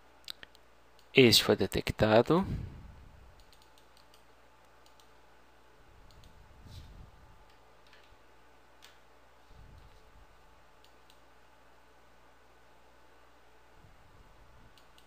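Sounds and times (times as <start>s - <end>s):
mouse and keyboard clicks: 3.4s - 5.1s.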